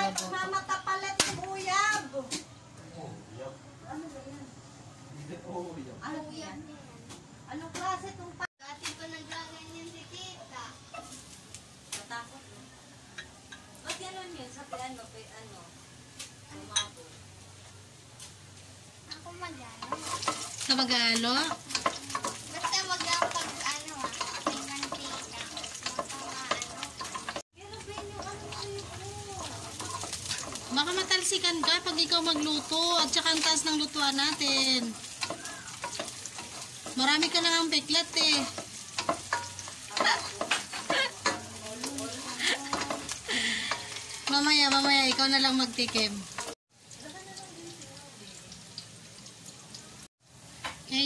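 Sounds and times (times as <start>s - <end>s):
aromatics sizzling in oil: 0.0s - 51.0s
spatula scraping a pot: 19.8s - 20.7s, 21.4s - 46.6s.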